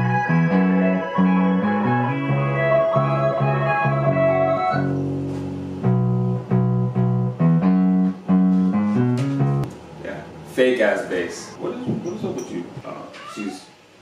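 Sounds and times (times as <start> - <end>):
twinkly spacey keys loop: 0.0 - 5.1
plucked bass line: 0.0 - 9.7.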